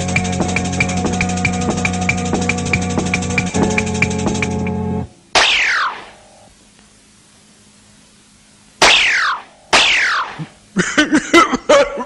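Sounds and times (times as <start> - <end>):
cartoon falling swoop: 5.4 - 6.2, 8.8 - 10.5.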